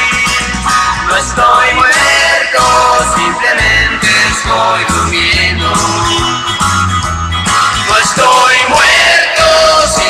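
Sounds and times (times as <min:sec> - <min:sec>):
bass: 0:00.0 - 0:10.0
drums: 0:00.0 - 0:10.0.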